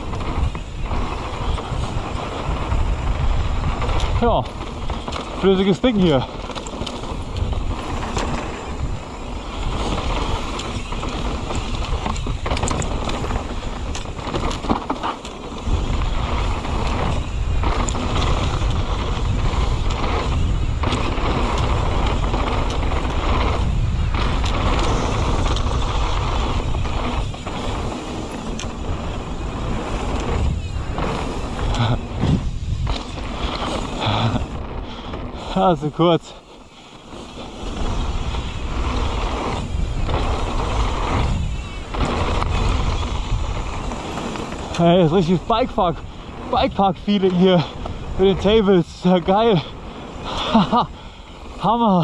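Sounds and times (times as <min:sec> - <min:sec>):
bike knocking and rattling: 0:00.0 - 0:52.0
bike tyres rolling on dirt: 0:00.0 - 0:52.0
wind rumbling on microphone: 0:00.0 - 0:52.0.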